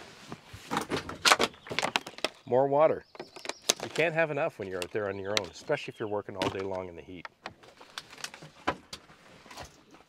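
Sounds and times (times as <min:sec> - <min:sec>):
knocks and rustles of handling: 0:00.0 - 0:02.5, 0:03.1 - 0:05.8, 0:06.4 - 0:10.0.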